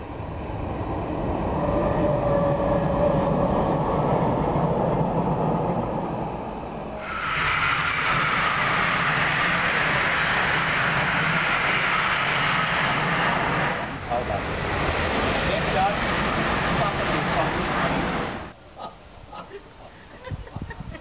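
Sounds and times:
passing train rushing noise: 0:00.0 - 0:18.6
train rumbling past: 0:00.0 - 0:18.6.

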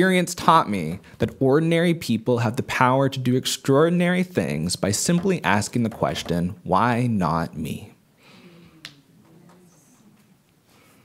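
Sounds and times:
faint room murmur: 0:05.7 - 0:11.0.

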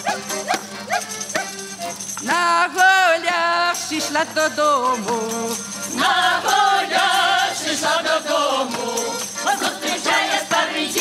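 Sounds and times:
accordion notes: 0:00.0 - 0:11.0
voices chanting: 0:05.9 - 0:11.0.

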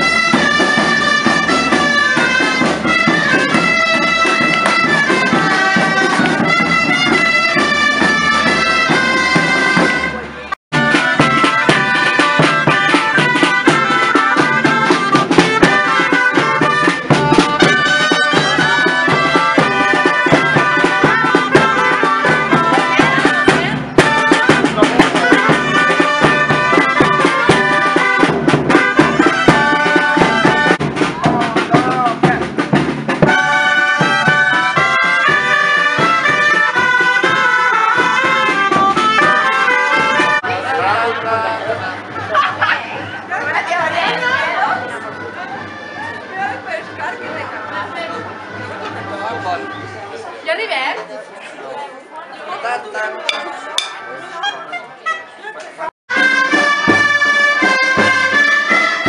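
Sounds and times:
steady drum beat: 0:00.0 - 0:44.9, 0:53.3 - 0:54.6
double-reed shawms playing melody: 0:00.0 - 0:50.8, 0:53.2 - 0:55.2, 0:56.1 - 0:59.0
crowd chatter: 0:00.0 - 0:59.0.

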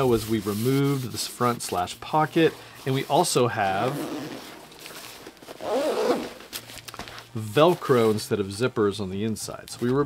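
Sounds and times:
velcro ripping apart: 0:04.0 - 0:07.0.

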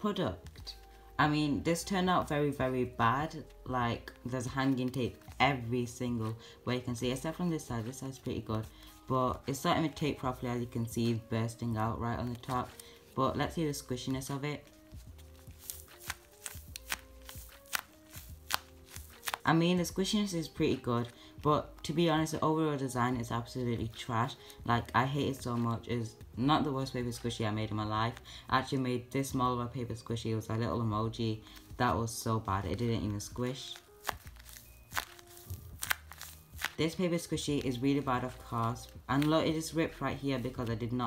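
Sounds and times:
soft background music: 0:00.0 - 0:41.0
taped paper crinkling: 0:03.3 - 0:06.5, 0:10.8 - 0:22.4, 0:32.8 - 0:41.0.

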